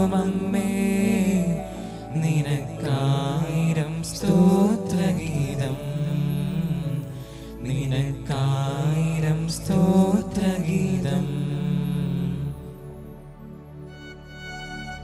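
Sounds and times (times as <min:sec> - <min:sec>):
slow devotional chant: 0:00.0 - 0:13.5
sustained low accompaniment: 0:00.0 - 0:15.0.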